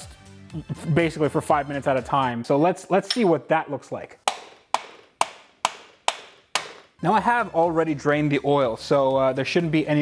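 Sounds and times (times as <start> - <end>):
rubber mallet striking metal wrench: 4.2 - 7.0.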